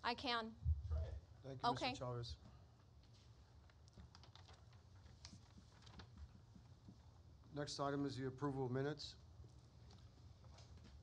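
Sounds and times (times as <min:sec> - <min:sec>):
typing on computer keyboard: 0:03.9 - 0:04.7.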